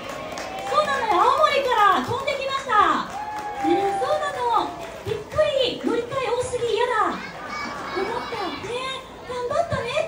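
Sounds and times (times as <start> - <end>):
people talking: 0.7 - 10.0
children's voices: 6.6 - 10.0.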